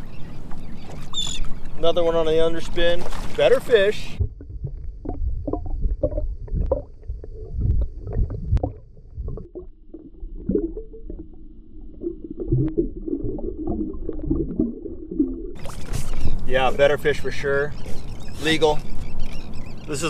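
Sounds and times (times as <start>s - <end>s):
muffled underwater water rumble: 0.0s - 19.9s.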